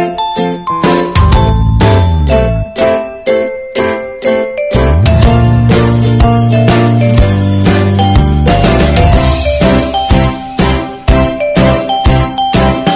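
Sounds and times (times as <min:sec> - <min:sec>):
bright chiming notes: 0:00.0 - 0:10.7
deep sliding bass: 0:01.4 - 0:02.7, 0:04.8 - 0:06.6.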